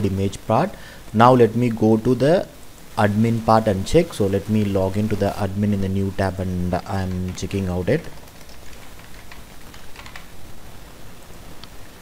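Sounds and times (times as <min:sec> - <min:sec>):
steady hiss: 0:00.0 - 0:12.0
keyboard keystrokes clicking: 0:07.1 - 0:10.3.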